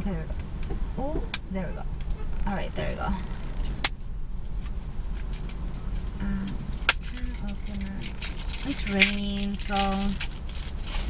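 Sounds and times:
low rumble in car cabin: 0:00.0 - 0:11.0.

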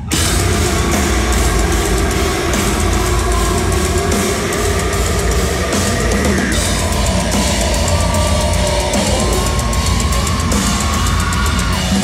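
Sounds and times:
distorted electric guitar: 0:00.0 - 0:12.0
heavy bass and drums: 0:00.0 - 0:12.0.

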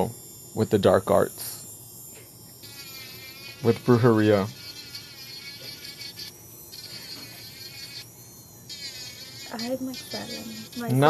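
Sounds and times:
electric nail drill whine: 0:00.0 - 0:11.0.

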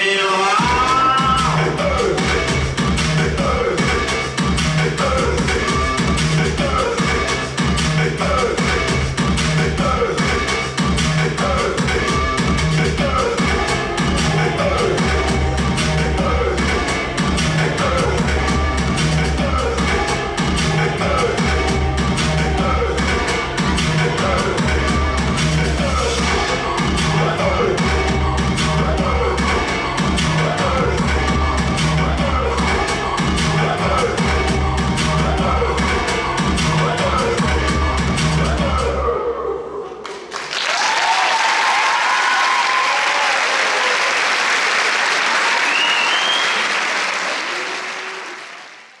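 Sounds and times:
dance music with heavy beat: 0:00.0 - 0:39.2
audience applauding: 0:40.0 - 0:49.0
audience cheering: 0:40.3 - 0:49.0.

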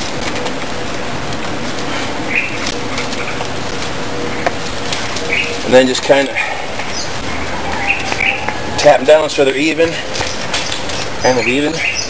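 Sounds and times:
steady background hiss: 0:00.0 - 0:12.0
bird chirping: 0:02.3 - 0:03.4, 0:05.2 - 0:12.0.

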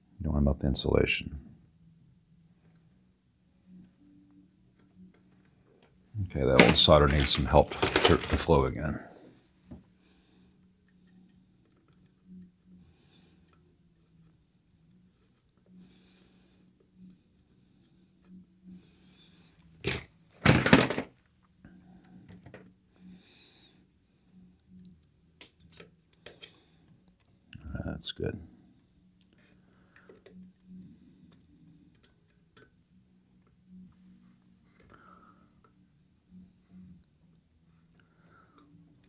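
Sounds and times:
faint low hum: 0:00.0 - 0:39.0.

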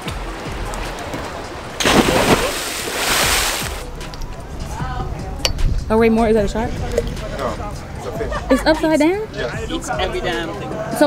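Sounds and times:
churning water spray: 0:00.0 - 0:03.9
person splashing into water: 0:01.8 - 0:03.8.

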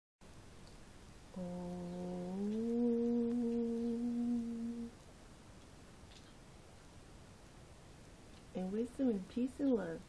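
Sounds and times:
woman humming: 0:01.3 - 0:05.0.

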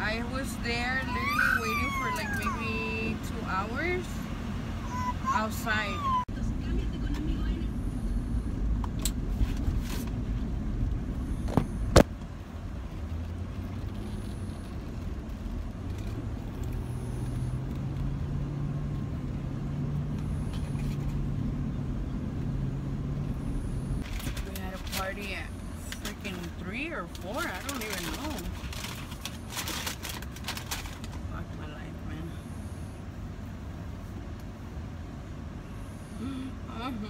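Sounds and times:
road rumble inside truck cabin: 0:00.0 - 0:37.0
truck engine drone: 0:00.0 - 0:37.0.

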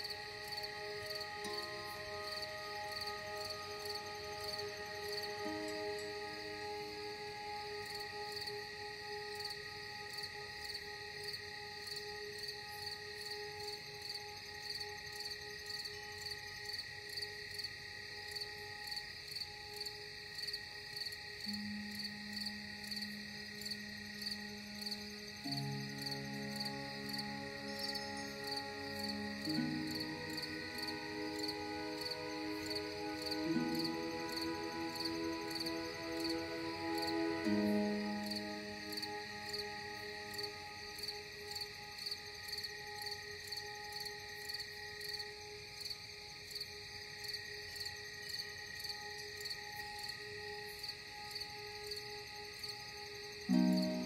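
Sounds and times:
crickets chirping: 0:00.0 - 0:54.0
slow ambient music: 0:00.0 - 0:54.0.

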